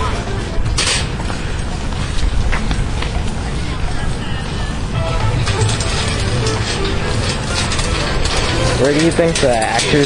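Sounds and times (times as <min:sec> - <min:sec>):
hand truck rattling over asphalt: 0:00.0 - 0:10.0.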